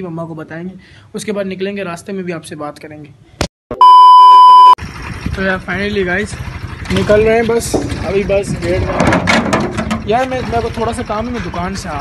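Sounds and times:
steady beep tone: 0:03.8 - 0:04.8.

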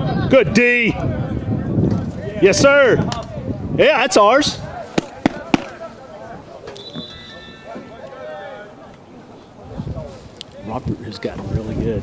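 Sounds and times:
distant voices calling: 0:04.0 - 0:09.8.

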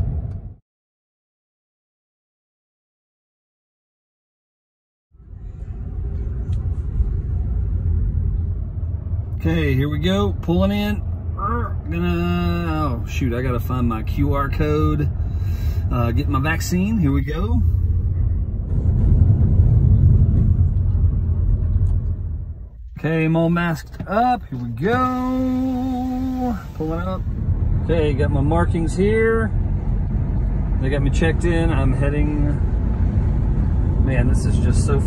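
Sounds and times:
car engine and road noise: 0:00.0 - 0:00.6, 0:05.1 - 0:35.0.

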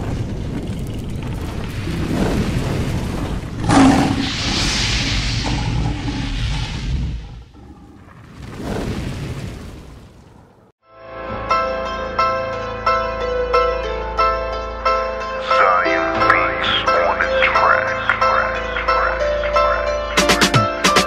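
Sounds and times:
deep rumbling booms: 0:00.0 - 0:10.6
hiss: 0:03.7 - 0:07.5.

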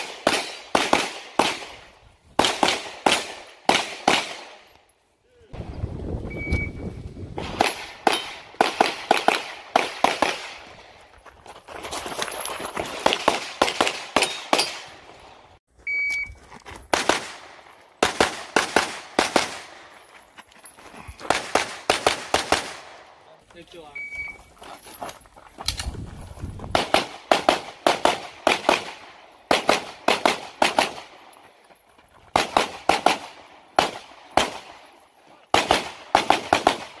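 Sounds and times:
pistol shots: 0:00.0 - 0:04.6, 0:07.4 - 0:10.7, 0:13.0 - 0:15.1, 0:16.9 - 0:19.8, 0:21.3 - 0:23.0, 0:26.7 - 0:31.2, 0:32.3 - 0:34.9, 0:35.5 - 0:37.0.

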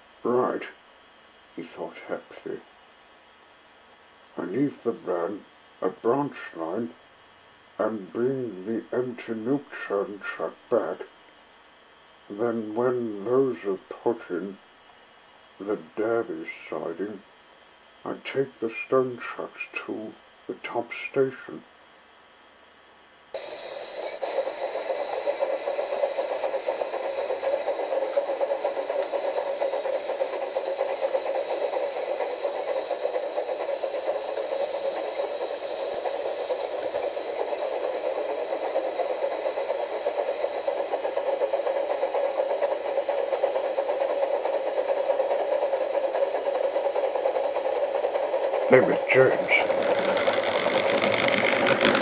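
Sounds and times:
model train motor whirring: 0:23.4 - 0:52.0
wheels and gears fluttering: 0:45.5 - 0:52.0.

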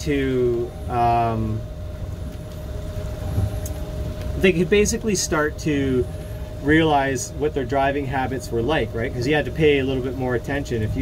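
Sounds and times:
boat motor low rumble: 0:00.0 - 0:11.0
constant thin whine: 0:00.0 - 0:11.0.

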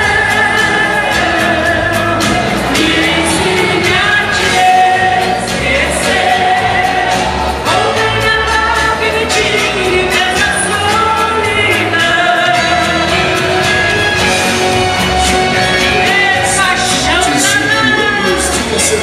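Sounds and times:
woman singing into a microphone: 0:00.0 - 0:14.4
upbeat backing music: 0:00.0 - 0:19.0.

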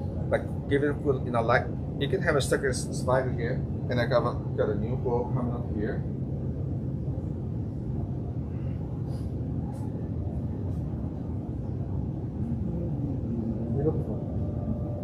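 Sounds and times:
circulation fans humming: 0:00.0 - 0:15.0.

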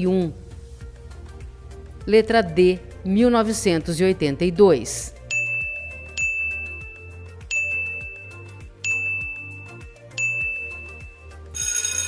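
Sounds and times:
background music with steady beat: 0:00.0 - 0:12.0
high ding: 0:05.3 - 0:12.0
ringing alarm bell: 0:05.3 - 0:12.0.

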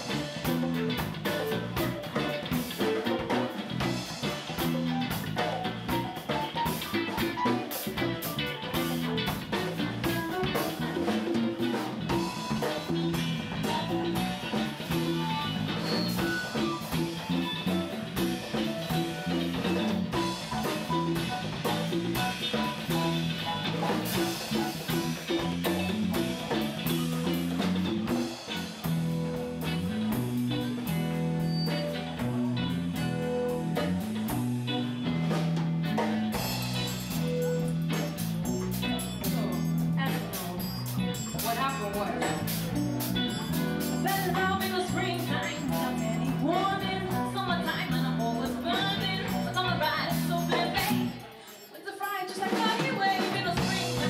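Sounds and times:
electric guitar: 0:00.0 - 0:51.8, 0:52.4 - 0:54.0
drum kit: 0:00.0 - 0:54.0
keyboard: 0:00.0 - 0:54.0.

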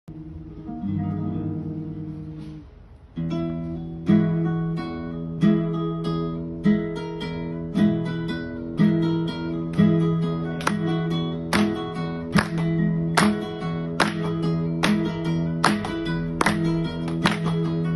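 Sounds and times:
flamenco guitar playing: 0:00.1 - 0:17.9.

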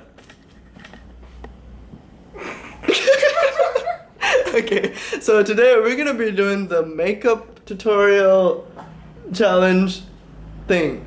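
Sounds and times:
person laughing: 0:02.3 - 0:05.2.

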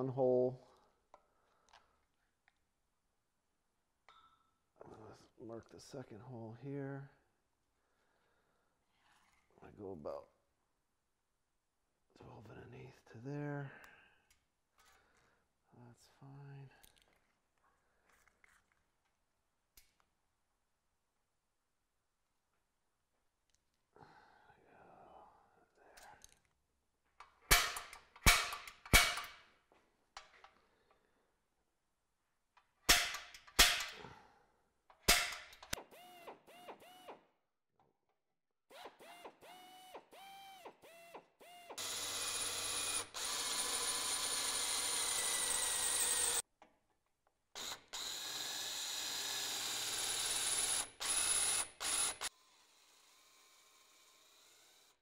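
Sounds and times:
cordless drill drilling metal: 0:35.1 - 0:37.2, 0:38.7 - 0:46.4, 0:47.6 - 0:55.0.

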